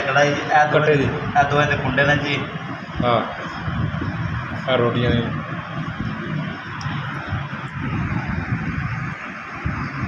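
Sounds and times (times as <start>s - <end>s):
steady fluttering rumble: 2.6s - 10.0s.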